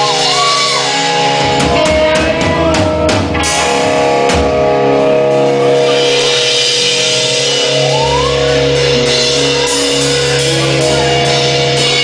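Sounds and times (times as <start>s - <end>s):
drum and cymbal hit: 5.5s - 12.0s.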